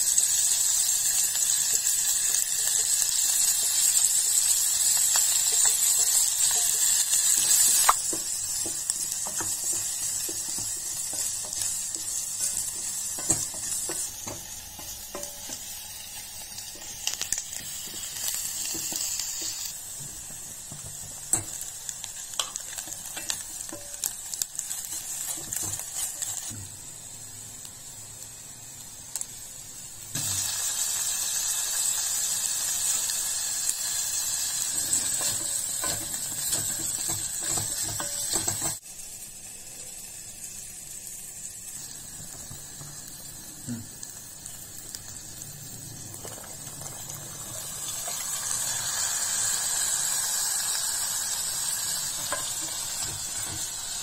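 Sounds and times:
onions sizzling in oil: 0:00.0 - 0:54.0.

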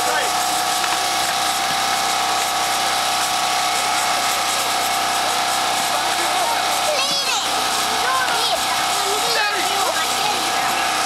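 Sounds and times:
steady buzzing drone: 0:00.0 - 0:11.0
faint children's voices: 0:06.1 - 0:11.0.

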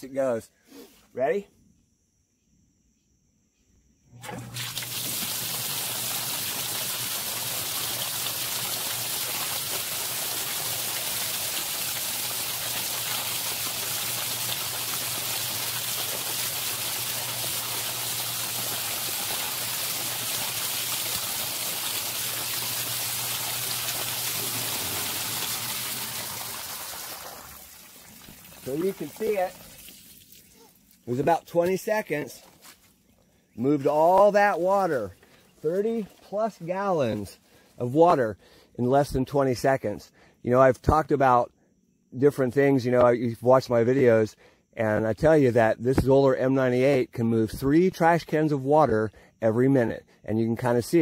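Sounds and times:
pump motor hum: 0:04.1 - 0:30.5
water rushing through pipe: 0:04.2 - 0:30.5.

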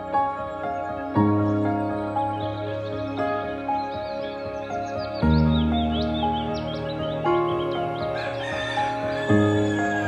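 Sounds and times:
music with long held notes: 0:00.0 - 0:10.0
rooster crowing: 0:08.2 - 0:10.0.

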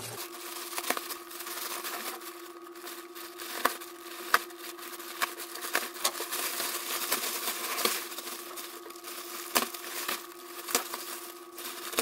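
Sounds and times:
knife slitting plastic wrap: 0:00.0 - 0:12.0
plastic crinkling and rustling: 0:00.0 - 0:12.0
steady low hum: 0:00.0 - 0:12.0.

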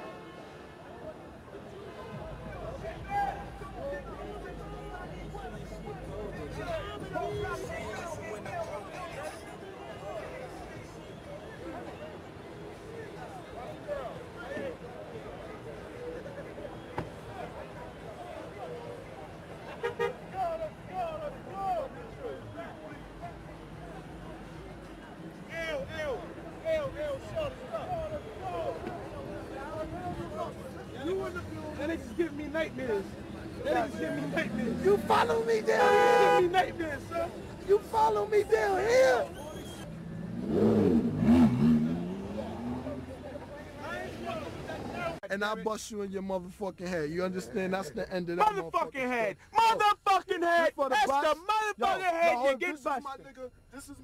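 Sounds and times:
street traffic rumble: 0:00.0 - 0:49.7
man's voice: 0:29.7 - 0:39.3, 0:43.7 - 0:54.0
car horn toots: 0:35.8 - 0:36.6
sports car engine revving: 0:40.1 - 0:43.2.

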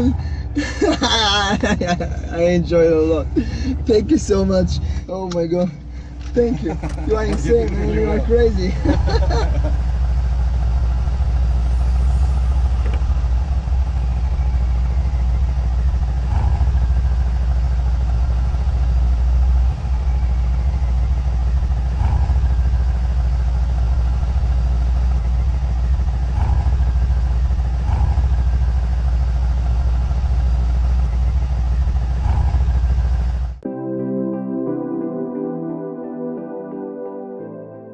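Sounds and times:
car engine and road noise: 0:00.0 - 0:33.7.

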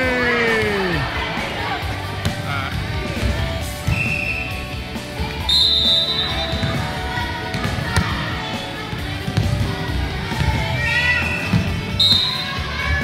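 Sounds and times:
music playing in a gymnasium: 0:00.0 - 0:13.0
referee's whistle blast: 0:03.9 - 0:04.5, 0:05.4 - 0:06.5, 0:11.3 - 0:12.6.

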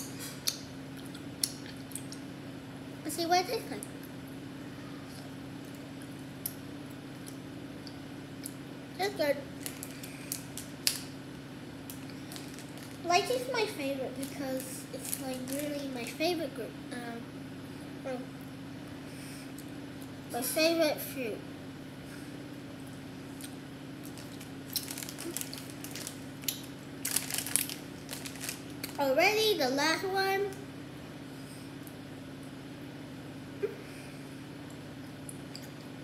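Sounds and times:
child chewing gummy candy: 0:00.0 - 0:02.3, 0:11.8 - 0:13.3, 0:22.5 - 0:29.0
low room hum: 0:00.0 - 0:36.0
plastic bag crinkling: 0:09.5 - 0:11.1, 0:11.9 - 0:13.5, 0:14.1 - 0:16.2, 0:24.0 - 0:29.0.

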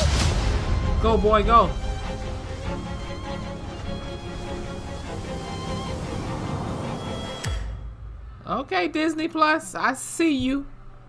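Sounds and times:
sharp hit and deep boom: 0:00.0 - 0:03.5, 0:07.0 - 0:08.5
trailer music sustained tones: 0:00.0 - 0:09.3, 0:10.4 - 0:11.0.

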